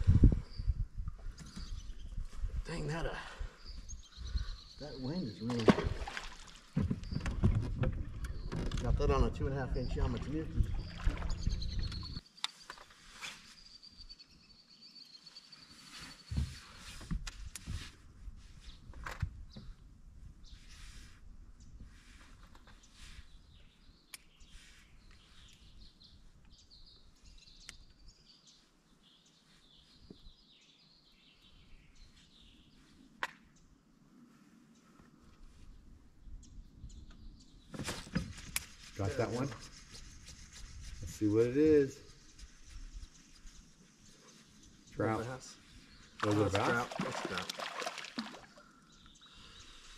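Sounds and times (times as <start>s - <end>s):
birds chirping: 0.4s - 16.5s, 35.8s - 49.9s.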